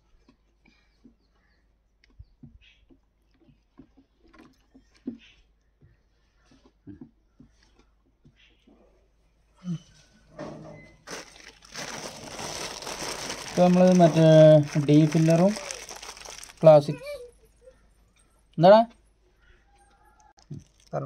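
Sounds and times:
plastic bag crinkling: 0:11.0 - 0:17.2, 0:20.4 - 0:21.0
person speaking: 0:11.8 - 0:17.7.

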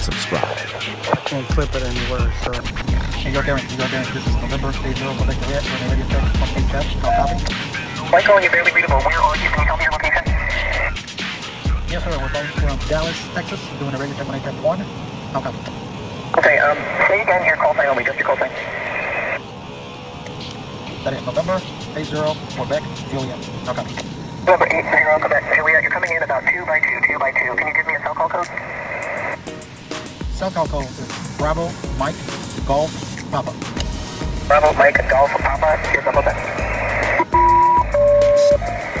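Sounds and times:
cockpit hum: 0:00.0 - 0:39.0
radio static hissing: 0:00.0 - 0:39.0.

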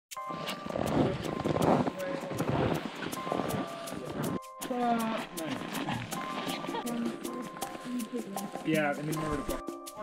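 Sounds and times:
background music with steady beat: 0:00.1 - 0:10.0
people's voices: 0:00.9 - 0:10.0.

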